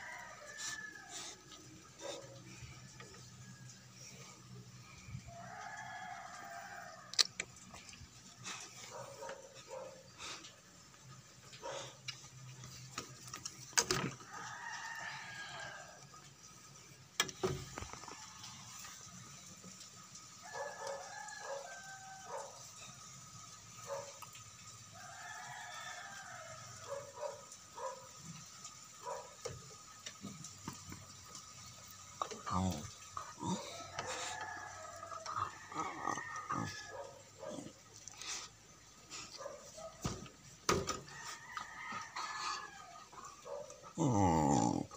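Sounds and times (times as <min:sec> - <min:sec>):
roosters crowing: 0:00.0 - 0:10.1, 0:13.0 - 0:16.8, 0:20.1 - 0:28.0, 0:28.8 - 0:44.9.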